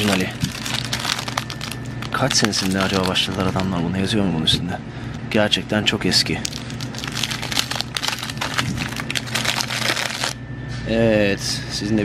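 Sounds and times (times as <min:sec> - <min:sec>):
plastic wrapper crinkling: 0:00.0 - 0:03.8, 0:06.4 - 0:10.4.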